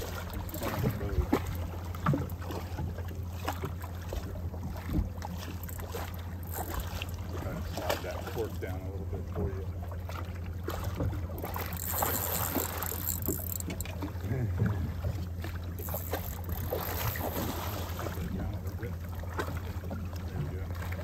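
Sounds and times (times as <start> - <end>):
outboard motor idling: 0.0 - 21.0.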